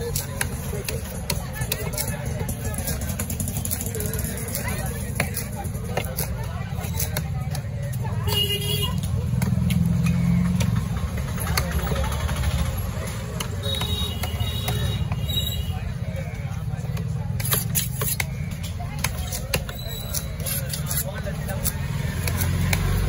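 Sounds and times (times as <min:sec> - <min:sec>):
background chatter: 0:00.0 - 0:23.0
low rumble of traffic: 0:00.0 - 0:23.0.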